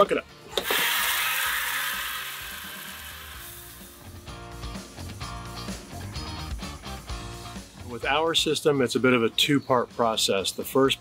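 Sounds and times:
background guitar music: 0.0 - 11.0
water spraying into plastic bucket: 0.6 - 3.9.

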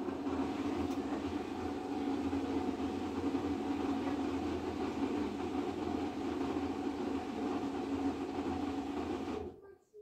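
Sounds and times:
washing machine drum spinning: 0.0 - 9.5.

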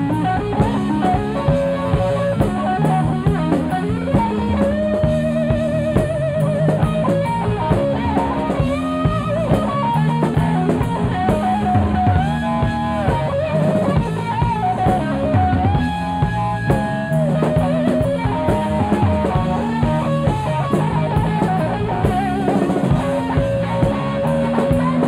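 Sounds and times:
drum kit: 0.0 - 25.0
electric bass: 0.0 - 25.0
electric lead guitar with vibrato: 0.0 - 25.0.

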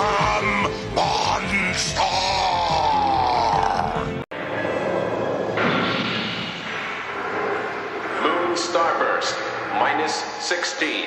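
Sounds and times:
noisy transformation sound effect: 4.3 - 10.9.

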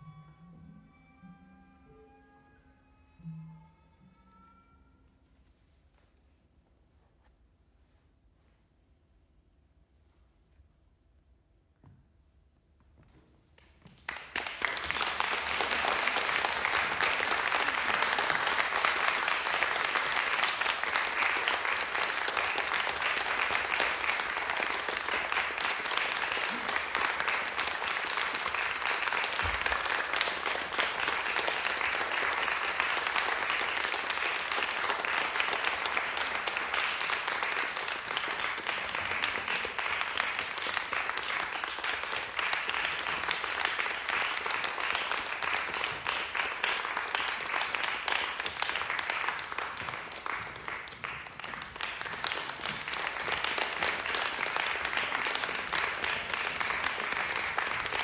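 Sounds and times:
audience applauding: 13.9 - 58.0.

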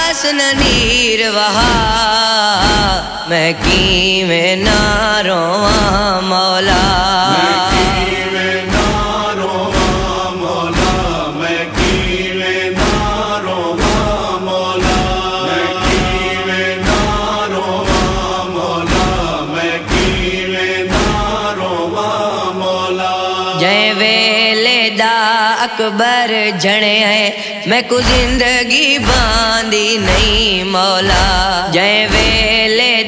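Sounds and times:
men chanting a lament: 0.0 - 33.0
chest-beating thumps: 0.5 - 22.1, 28.0 - 32.7.

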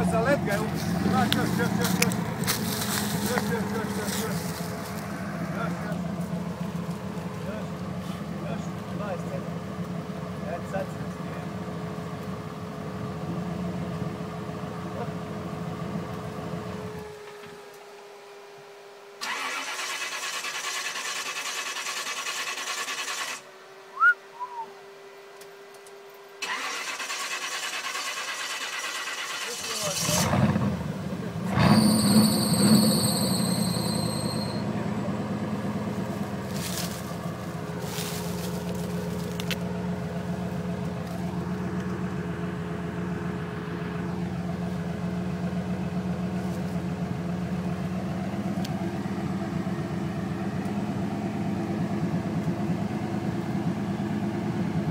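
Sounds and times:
car engine running: 0.0 - 17.4, 26.4 - 54.9.

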